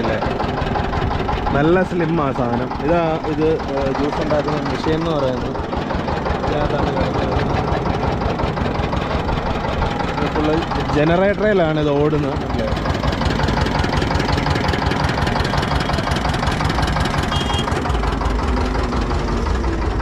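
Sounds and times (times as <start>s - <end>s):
diesel engine idling: 0.0s - 20.0s.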